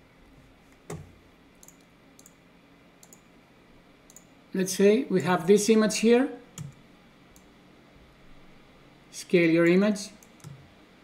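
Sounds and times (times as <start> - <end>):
computer mouse clicks: 0.8 - 2.4, 3.0 - 3.3, 4.1 - 4.3, 6.6 - 7.5, 10.2 - 10.7.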